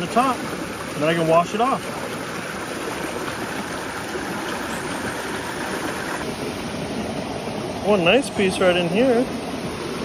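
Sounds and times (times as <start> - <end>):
river rushing over rocks: 0.0 - 10.0.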